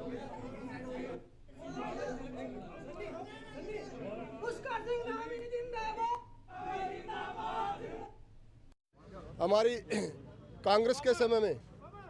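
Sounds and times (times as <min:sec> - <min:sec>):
crowd chatter: 0:00.0 - 0:08.2.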